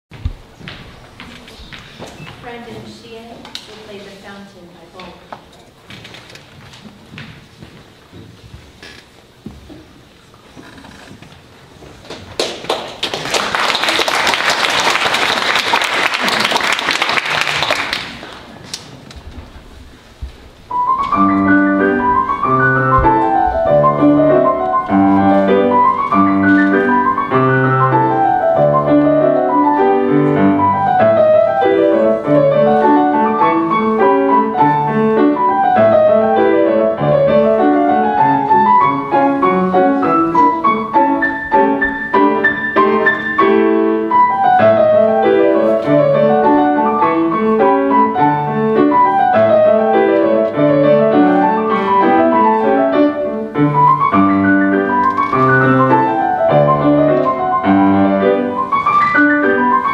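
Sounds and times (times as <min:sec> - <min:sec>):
solo classical piano: 0:19.3 - 0:59.9.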